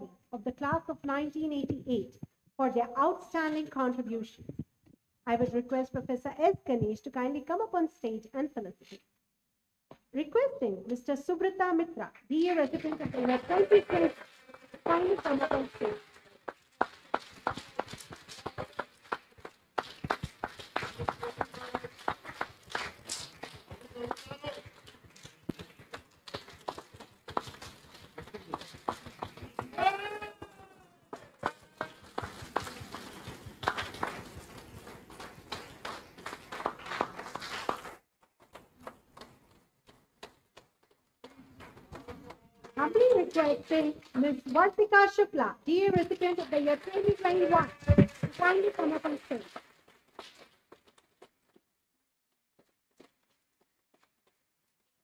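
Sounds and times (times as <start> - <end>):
voices: 10.2 - 16.1, 42.6 - 49.5
audience clapping: 12.6 - 44.7, 45.9 - 51.6.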